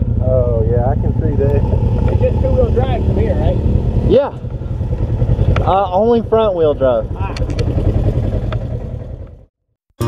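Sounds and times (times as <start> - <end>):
vehicle engine idling: 0.0 - 9.5.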